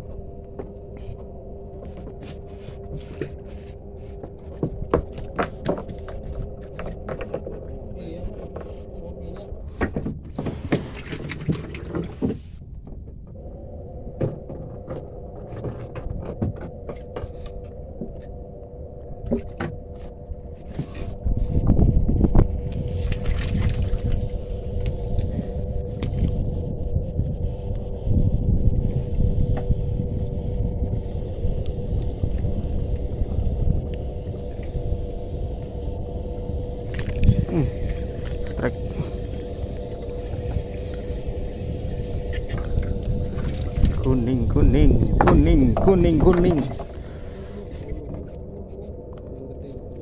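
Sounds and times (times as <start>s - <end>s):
boat engine running: 0.0s - 50.0s.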